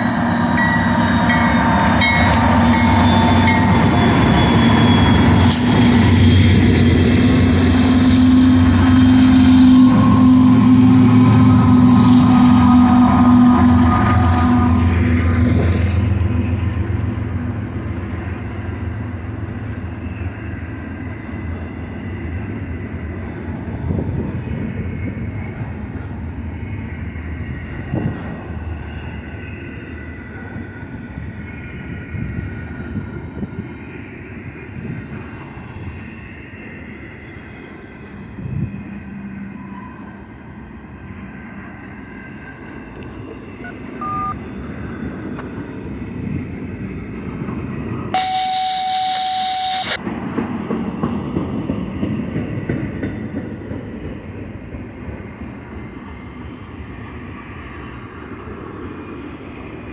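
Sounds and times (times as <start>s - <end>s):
rail car clunks: 0.0s - 17.6s, 47.4s - 55.4s
diesel locomotive engines passing: 0.0s - 59.9s.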